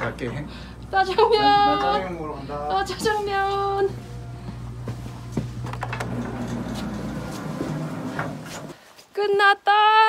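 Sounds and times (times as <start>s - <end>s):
steady low hum: 0.0s - 8.8s
footsteps on a path: 4.4s - 5.7s.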